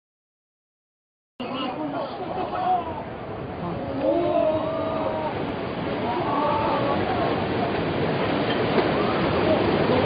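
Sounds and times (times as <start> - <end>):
floodwater rushing over wall: 1.9 - 10.0.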